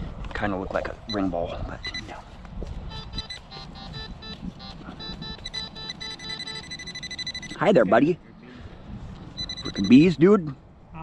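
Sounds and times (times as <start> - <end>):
metal detector beeping: 1.1 - 2.2, 2.9 - 7.9, 9.4 - 10.2.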